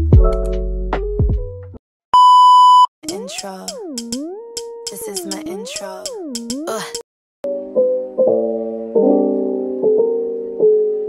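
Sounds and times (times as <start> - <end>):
swooping synth music: 3.0 - 7.0.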